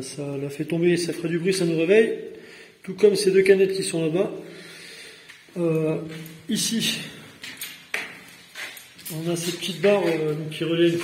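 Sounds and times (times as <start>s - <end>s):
footsteps scuffing on concrete: 7.3s - 11.0s.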